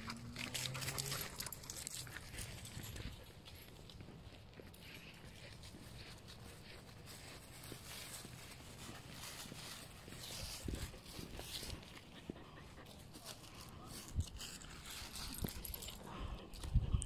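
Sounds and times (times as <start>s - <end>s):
dogs moving about: 0.0s - 16.7s
footsteps on leafy dirt trail: 0.0s - 16.9s.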